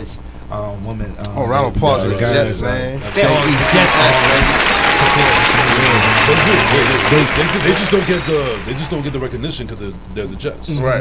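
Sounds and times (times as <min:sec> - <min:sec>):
men talking: 0:00.0 - 0:11.0
applause and cheering: 0:03.0 - 0:09.5.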